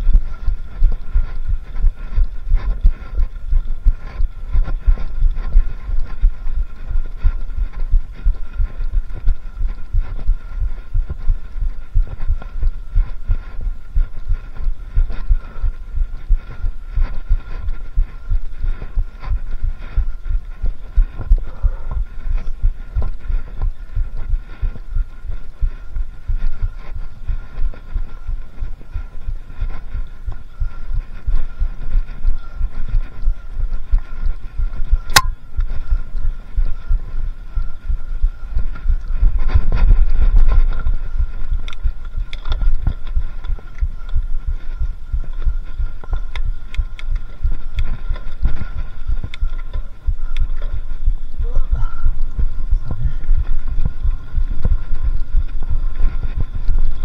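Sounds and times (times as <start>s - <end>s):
camera thudding and rumble: 0.0s - 57.0s
sharp click: 35.1s - 35.4s.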